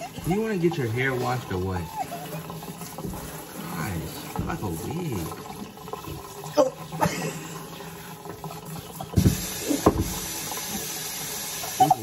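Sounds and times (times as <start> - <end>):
faucet water splashing on hair: 0.0 - 12.0.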